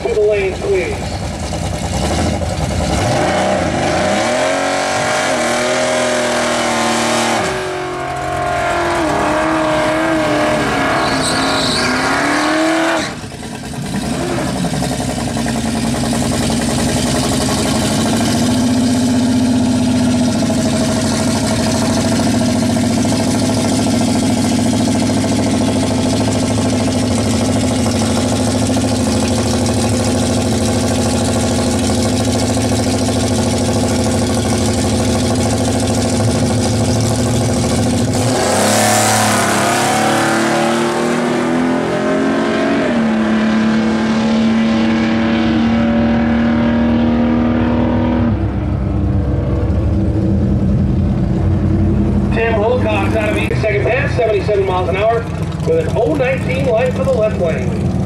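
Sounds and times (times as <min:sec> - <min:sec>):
drag race car engines idling: 0:00.0 - 0:04.0, 0:07.5 - 0:11.9, 0:13.0 - 0:39.7, 0:47.2 - 0:58.0
race cars accelerating: 0:02.0 - 0:13.4, 0:35.6 - 0:58.0.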